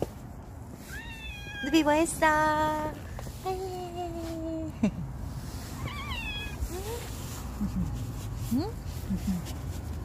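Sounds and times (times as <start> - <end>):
cat meowing: 0.9 - 1.9, 5.8 - 6.9.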